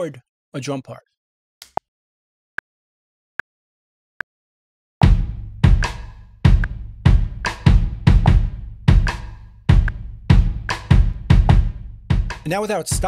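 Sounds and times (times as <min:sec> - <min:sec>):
deep kick drum thuds: 0:05.0 - 0:13.0.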